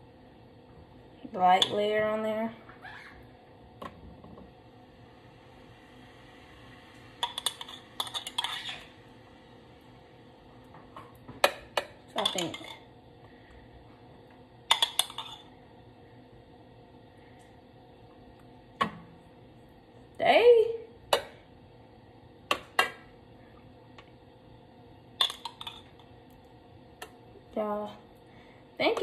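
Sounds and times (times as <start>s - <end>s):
knife scraping metal pan: 7.2s - 8.9s.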